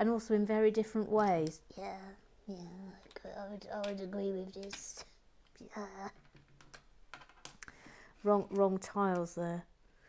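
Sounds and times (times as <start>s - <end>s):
plastic brick tiles clicking: 6.2s - 7.7s.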